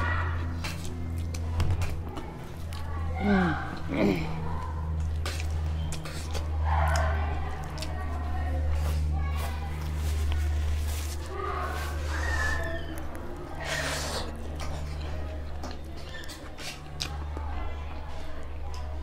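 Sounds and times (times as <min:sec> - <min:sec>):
chewing and lip smacking: 0:00.2 - 0:19.0.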